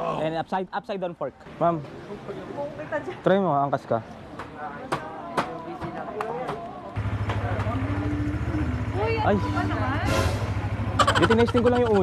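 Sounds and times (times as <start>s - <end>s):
motorcycle engine starting and idling: 7.0s - 12.0s.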